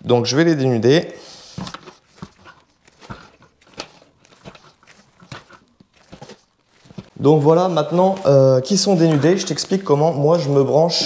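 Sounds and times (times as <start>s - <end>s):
wire strippers clicking and scraping: 1.5s - 11.0s.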